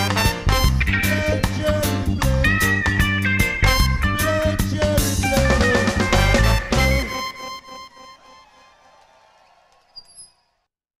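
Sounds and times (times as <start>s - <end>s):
live reggae band playing: 0.0s - 8.4s
guitar and keyboard tones ringing: 0.0s - 8.5s.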